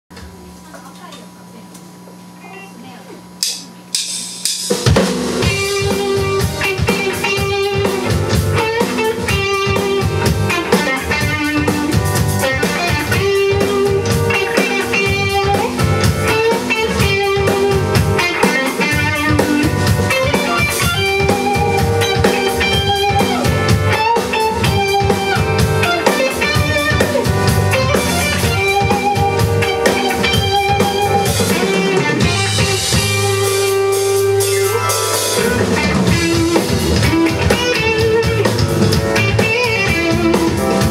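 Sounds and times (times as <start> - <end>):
live rock band playing: 3.4 - 40.9.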